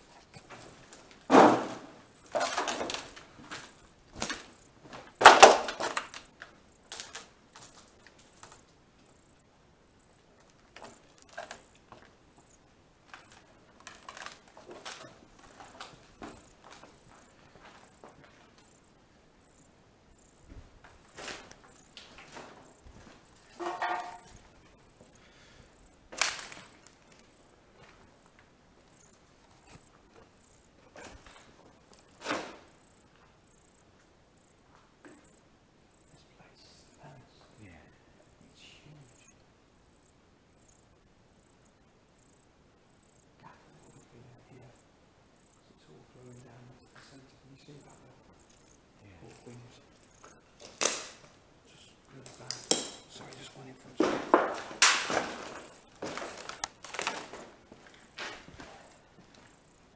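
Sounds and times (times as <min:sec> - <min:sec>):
faint high-pitched whine: 0:00.0 - 0:59.9
footsteps on rubble: 0:13.0 - 0:18.6, 0:54.0 - 0:59.6.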